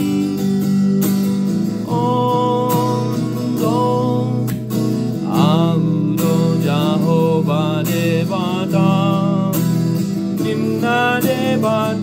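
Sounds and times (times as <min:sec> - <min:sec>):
man singing a hymn: 0:00.0 - 0:00.6, 0:01.8 - 0:04.5, 0:05.2 - 0:12.0
strummed acoustic guitar: 0:00.0 - 0:12.0.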